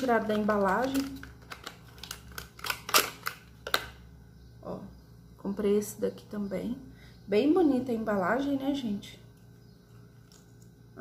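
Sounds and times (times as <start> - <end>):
packaging clicks and crinkles: 0.0 - 4.0.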